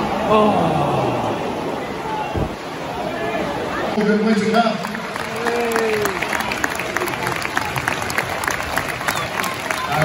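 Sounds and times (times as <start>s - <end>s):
stadium crowd applauding: 3.8s - 10.0s.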